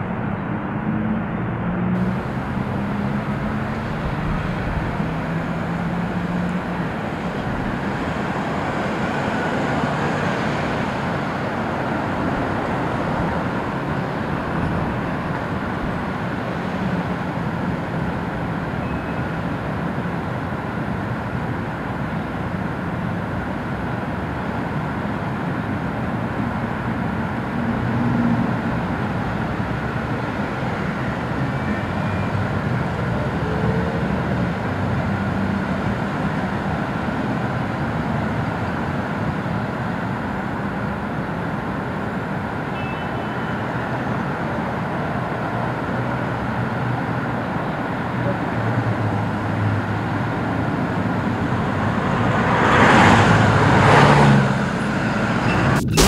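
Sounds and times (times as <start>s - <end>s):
vehicles rushing past: 0.0s - 24.2s, 43.6s - 56.0s
road traffic rumble and hiss: 0.0s - 56.0s.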